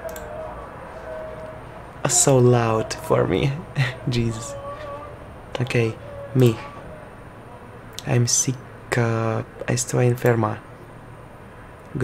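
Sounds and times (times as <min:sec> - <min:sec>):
person yelling outside: 0:00.0 - 0:07.2
low background hum: 0:00.0 - 0:12.0.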